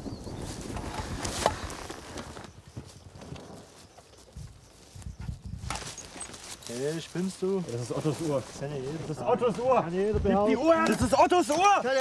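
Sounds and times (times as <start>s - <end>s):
footsteps through tall grass: 0.1s - 12.0s.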